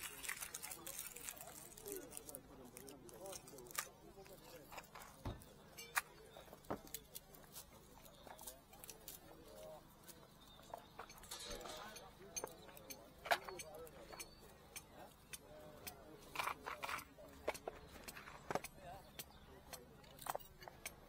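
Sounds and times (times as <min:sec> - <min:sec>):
clicks of trinkets being handled: 0:00.0 - 0:21.0
people talking: 0:00.0 - 0:21.0.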